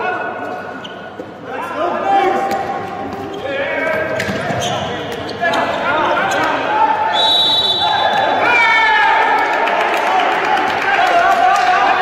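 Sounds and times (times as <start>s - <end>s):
referee's whistle: 7.1s - 8.4s.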